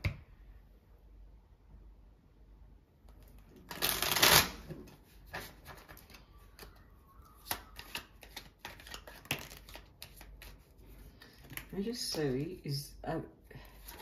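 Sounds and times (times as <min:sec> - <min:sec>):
cards being shuffled: 0:03.2 - 0:06.8, 0:07.4 - 0:11.8.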